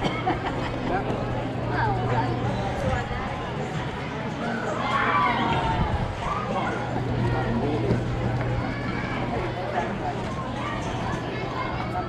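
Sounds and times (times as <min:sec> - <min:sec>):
indistinct chatter of voices: 0:00.0 - 0:12.0
steady low hum: 0:05.6 - 0:12.0.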